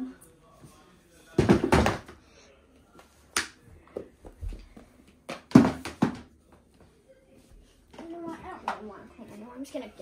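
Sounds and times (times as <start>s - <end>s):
cardboard boxes knocking in plastic bin: 1.4s - 2.1s.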